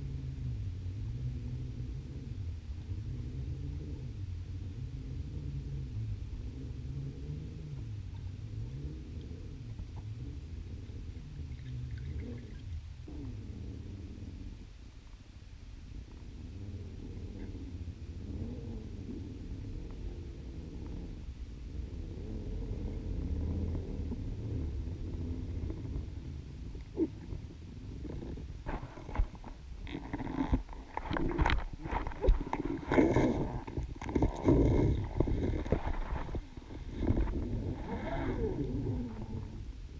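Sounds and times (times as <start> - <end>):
low underwater rumble: 0.0 - 39.9
knocks and clicks underwater: 25.5 - 38.4.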